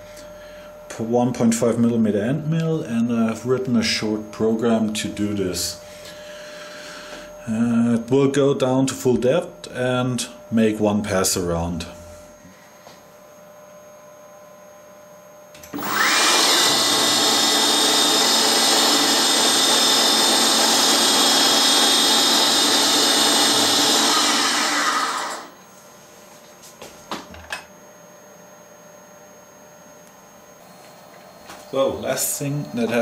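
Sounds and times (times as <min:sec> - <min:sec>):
milling machine spindle whining: 0:15.7 - 0:25.6, 0:30.5 - 0:33.0
end mill cutting steel: 0:15.8 - 0:25.6.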